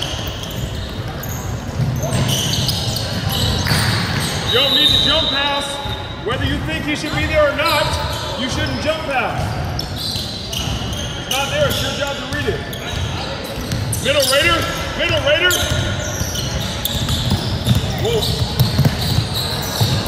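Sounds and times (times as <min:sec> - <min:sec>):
indistinct voices in echoing hall: 0:00.0 - 0:20.0
basketball bouncing on hardwood floor: 0:15.1 - 0:20.0.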